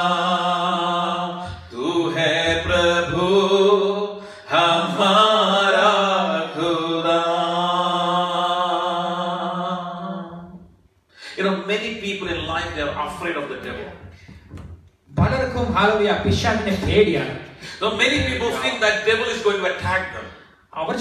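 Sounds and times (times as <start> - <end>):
men singing worship song: 0.0 - 10.6.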